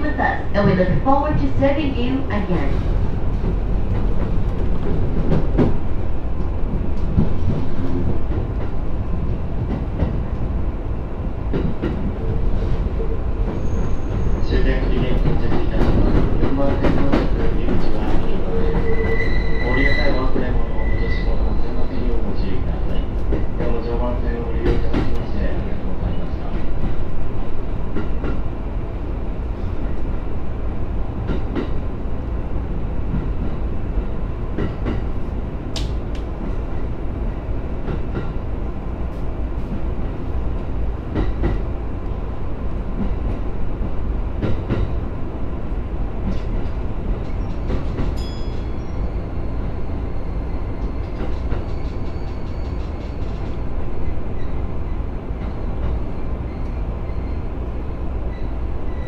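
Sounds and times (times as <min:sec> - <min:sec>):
train wheels rumbling: 0:00.0 - 0:59.0.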